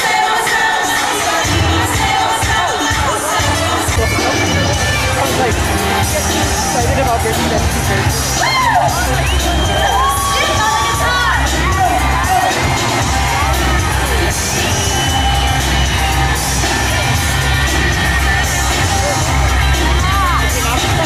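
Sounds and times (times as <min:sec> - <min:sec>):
fans screaming and cheering: 0:00.0 - 0:21.0
live pop band playing: 0:00.0 - 0:21.0.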